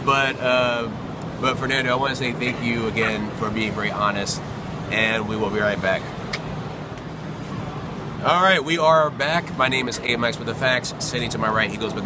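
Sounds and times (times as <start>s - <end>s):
shopping mall hum and hubbub: 0.0s - 12.0s.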